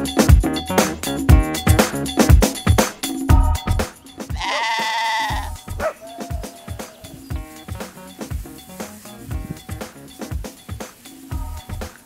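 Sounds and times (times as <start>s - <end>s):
music with steady beat: 0.0s - 12.0s
lamb bleating: 4.3s - 7.3s.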